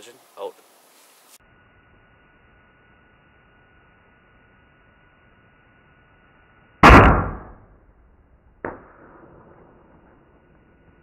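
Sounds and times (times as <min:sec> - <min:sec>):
bow firing arrow crack: 0:06.8 - 0:07.8, 0:08.6 - 0:10.3.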